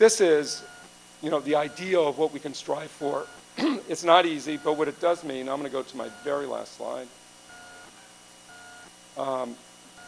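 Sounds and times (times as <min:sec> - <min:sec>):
faint electronic beeps: 0:00.4 - 0:03.5, 0:04.2 - 0:06.7, 0:07.5 - 0:10.0.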